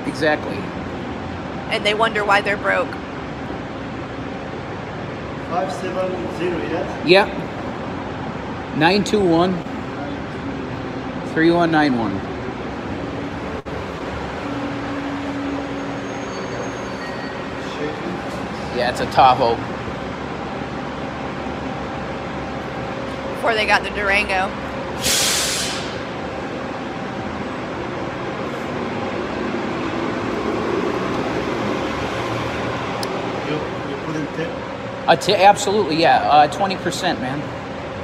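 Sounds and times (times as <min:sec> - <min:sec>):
engine running nearby: 0:00.0 - 0:38.0
traffic noise: 0:00.0 - 0:38.0
vehicles: 0:00.0 - 0:38.0.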